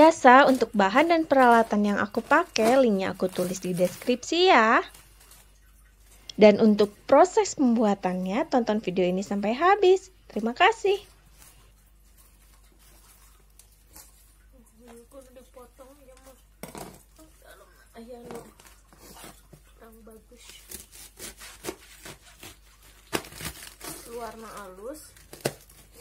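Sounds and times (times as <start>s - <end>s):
cabbage leaves rustling: 0.0s - 7.4s, 18.0s - 26.0s
knife crunching through cabbage: 0.1s - 4.2s, 18.4s - 26.0s.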